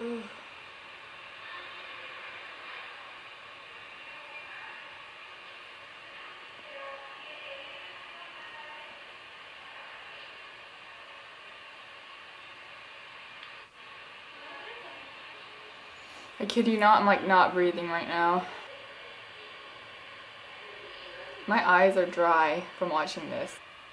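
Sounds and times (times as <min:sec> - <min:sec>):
steady hiss: 0:00.0 - 0:23.9.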